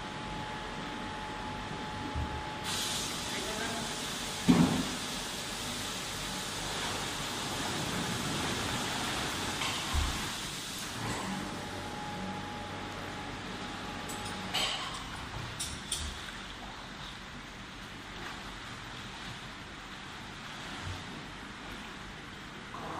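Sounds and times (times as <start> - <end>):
rushing hiss of water and air: 2.6 - 11.1.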